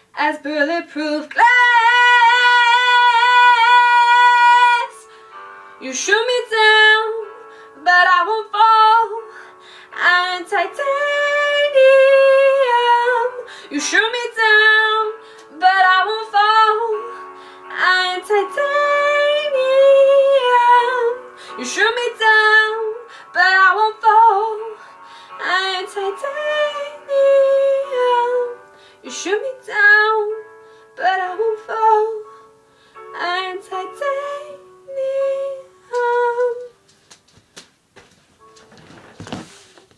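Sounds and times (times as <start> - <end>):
woman singing: 0.2 - 5.1, 5.8 - 9.3, 9.9 - 32.3, 33.0 - 36.8.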